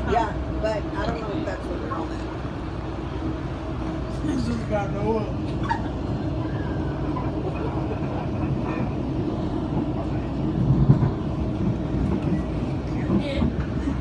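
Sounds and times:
train carriage rumbling on track: 0.0s - 14.0s.

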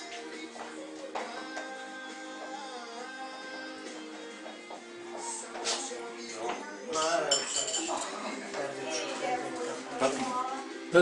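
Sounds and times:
tableware clinking: 6.9s - 9.8s.

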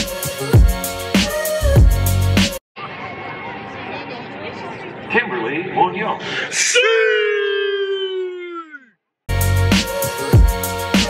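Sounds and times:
spectator hooting: 6.5s - 8.9s.

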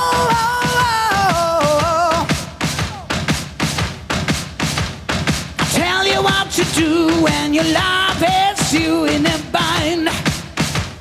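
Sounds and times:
drums: 0.0s - 11.0s.

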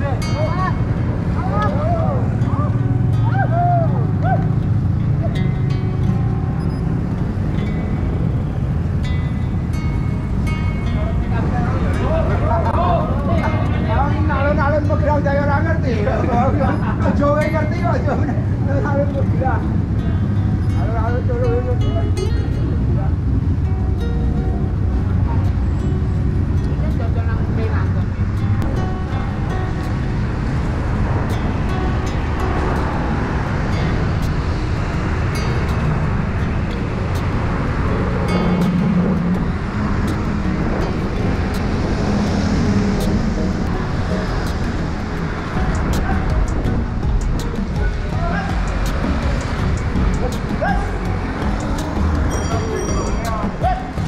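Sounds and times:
street traffic: 0.0s - 54.0s
wind rumble on microphone: 0.0s - 54.0s.

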